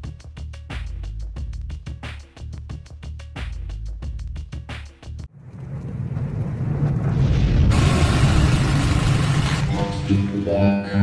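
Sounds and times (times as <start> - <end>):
low rumble: 5.3 - 10.2
loud hissing crash: 5.9 - 10.0.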